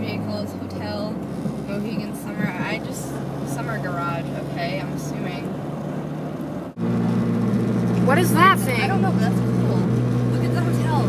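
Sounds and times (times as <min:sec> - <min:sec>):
car road and engine drone: 0:00.0 - 0:11.0.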